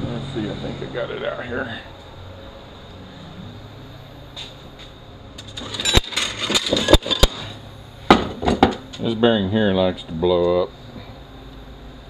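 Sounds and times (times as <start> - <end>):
steady low hum: 0.0 - 12.0
metal parts clinking: 5.4 - 7.5.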